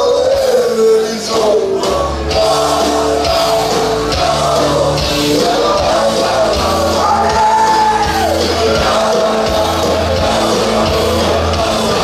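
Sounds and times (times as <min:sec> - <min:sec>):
bass guitar: 0:00.0 - 0:12.0
drums: 0:00.0 - 0:12.0
electric guitars: 0:00.0 - 0:12.0
man singing lead vocal: 0:00.0 - 0:12.0.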